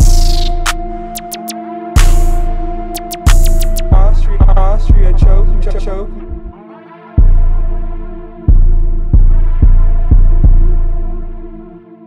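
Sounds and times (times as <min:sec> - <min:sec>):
deep bass hits: 0:00.0 - 0:00.7, 0:07.2 - 0:11.1
sustained melodic layer: 0:00.0 - 0:11.8
hip-hop instrumental beat: 0:00.0 - 0:12.0.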